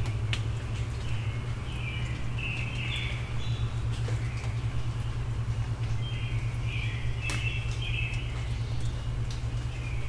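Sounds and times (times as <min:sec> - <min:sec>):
distant vehicle traffic rumble: 0:00.0 - 0:10.0
songbird singing: 0:00.0 - 0:10.0.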